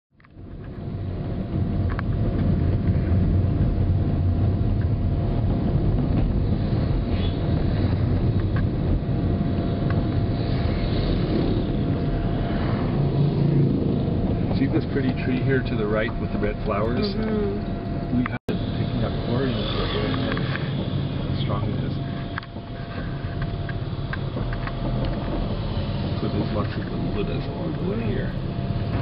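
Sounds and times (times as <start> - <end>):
car road and engine rumble: 0.2 - 29.0
faint steady whine: 0.2 - 29.0.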